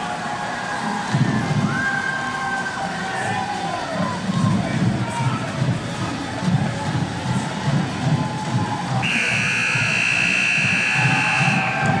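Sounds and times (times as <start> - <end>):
arena crowd noise: 0.0 - 12.0
electronic buzzer long tone: 9.0 - 11.6.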